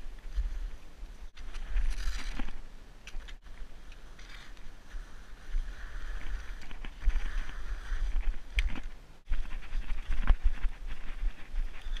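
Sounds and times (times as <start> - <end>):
wind on microphone: 3.6 - 12.0.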